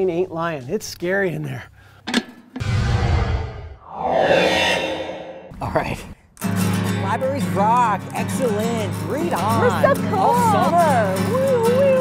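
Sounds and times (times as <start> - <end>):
short sharp hit: 2.6 - 5.5
loud whoosh: 2.6 - 5.6.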